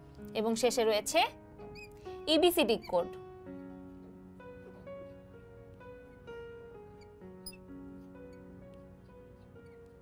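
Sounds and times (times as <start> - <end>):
soft background music: 0.0 - 10.0
high squeak: 1.7 - 2.0, 6.9 - 7.7, 9.4 - 10.0.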